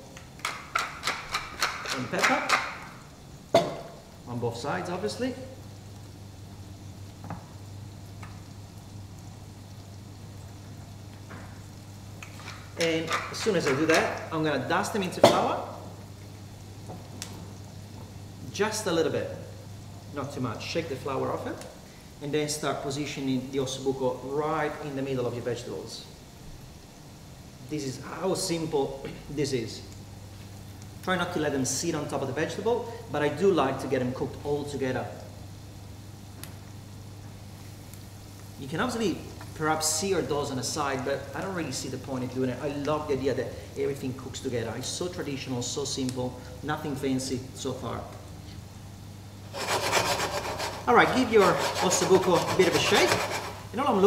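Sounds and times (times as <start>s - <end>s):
vegetables sizzling in a frying pan: 1.8s - 22.2s, 35.2s - 45.3s.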